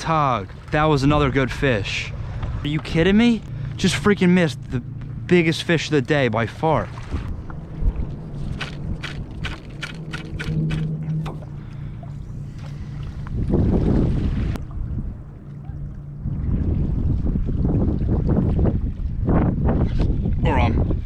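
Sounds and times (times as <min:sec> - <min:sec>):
steady low hum: 0:00.0 - 0:21.0
wind buffeting microphone: 0:06.8 - 0:21.0.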